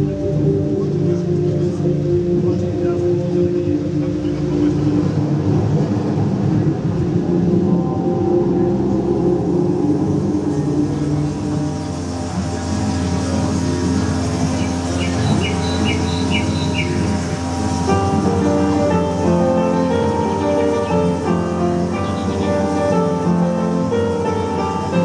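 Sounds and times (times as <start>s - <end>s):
held musical tones: 0.0s - 25.0s.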